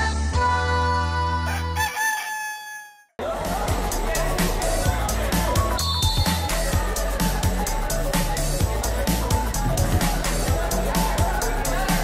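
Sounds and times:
cartoon rooster crowing: 1.4 - 3.1
busy background noise: 3.2 - 12.0.

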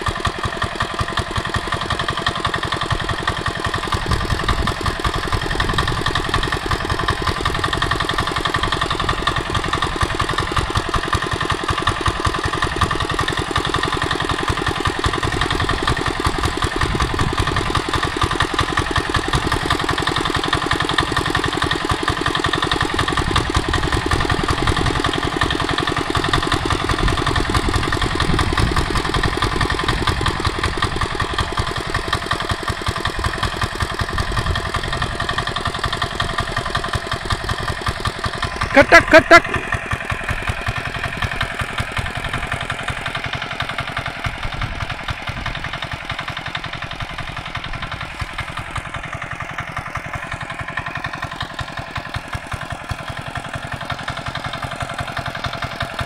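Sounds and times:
tractor engine running steadily: 0.0 - 56.0.

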